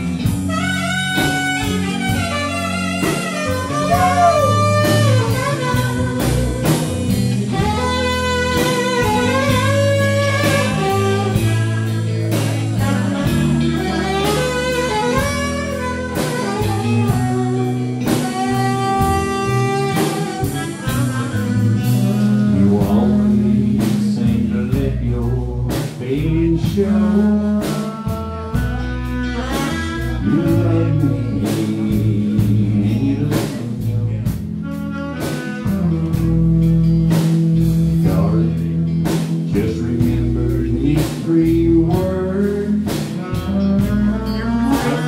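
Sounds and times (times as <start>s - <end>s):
saxophone: 0.0s - 24.7s, 25.7s - 45.0s
bass guitar: 0.0s - 45.0s
drums: 0.0s - 45.0s
guitar: 0.0s - 45.0s.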